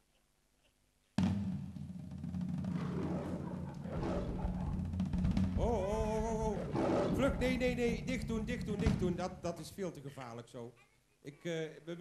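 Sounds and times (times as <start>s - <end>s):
low rolling drum music: 1.2s - 9.9s.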